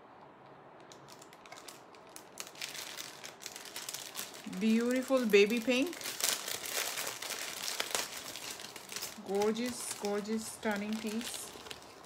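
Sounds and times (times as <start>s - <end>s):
packaging crinkling: 0.8s - 12.0s.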